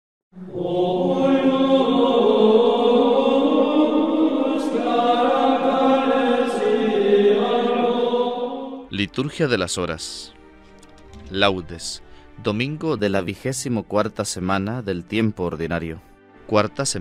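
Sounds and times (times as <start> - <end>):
voices singing sacred chant: 0.4 - 8.9.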